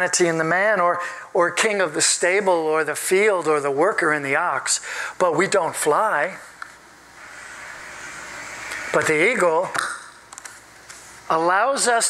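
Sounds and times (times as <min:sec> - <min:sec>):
man speaking: 0:00.0 - 0:06.5, 0:08.9 - 0:09.8, 0:11.3 - 0:12.0.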